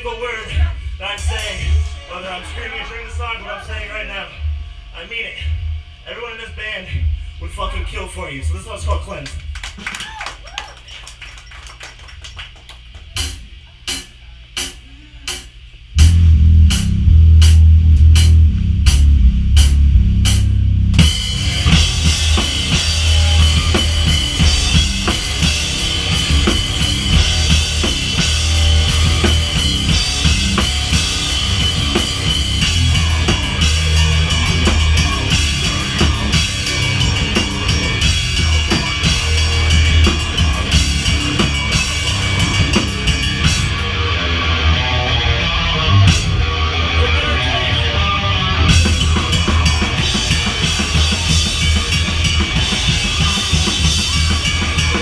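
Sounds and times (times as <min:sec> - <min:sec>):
live rock band playing: 0:16.0 - 0:55.0.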